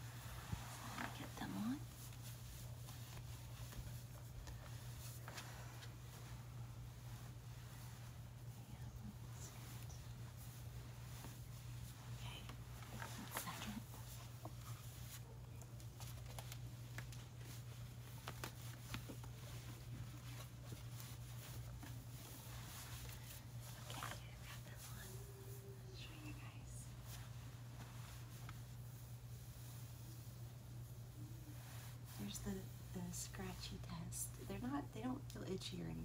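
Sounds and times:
clothing and bedding rustling: 0.0s - 36.0s
steady low hum: 0.0s - 36.0s.

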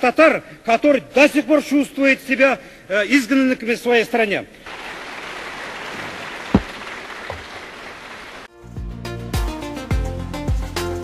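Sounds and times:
applause in a large hall: 4.7s - 8.5s
single thump: 6.5s - 7.5s.

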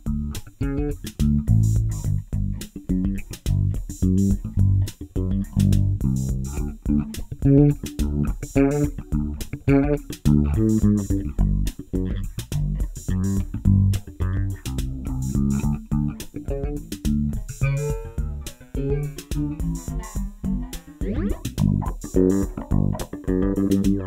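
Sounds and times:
electric bass with flanger effect: 0.0s - 24.0s.

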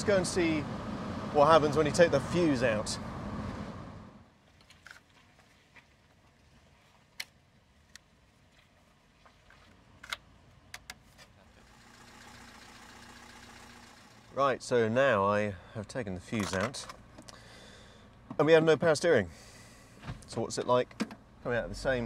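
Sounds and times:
low steady engine hum: 0.0s - 4.3s.

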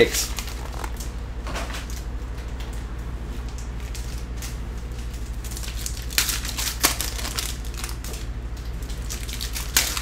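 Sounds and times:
foil packs rustling: 0.0s - 1.1s, 3.8s - 8.3s, 8.9s - 10.0s
steady low hum: 0.0s - 10.0s.

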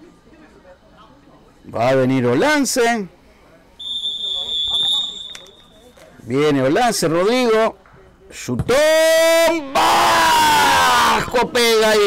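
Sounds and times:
referee's whistle blast: 3.8s - 5.9s.

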